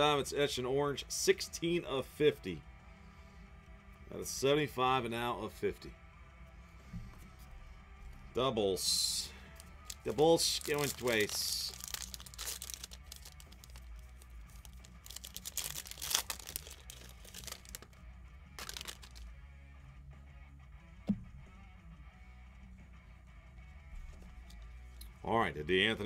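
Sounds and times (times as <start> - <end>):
faint background music: 0.0 - 26.0
wrapper crinkling and tearing: 9.4 - 18.0, 18.6 - 19.2.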